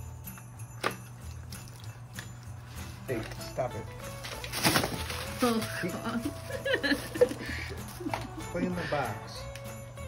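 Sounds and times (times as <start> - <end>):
cardboard box rustling: 4.2 - 6.7.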